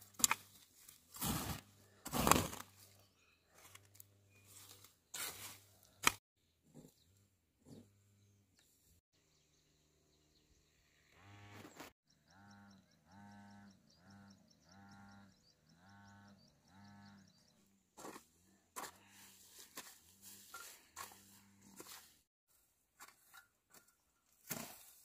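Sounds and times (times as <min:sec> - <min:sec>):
hoe chopping dry ground: 0:00.0 - 0:02.8, 0:05.2 - 0:06.2, 0:18.0 - 0:22.2, 0:22.9 - 0:25.0.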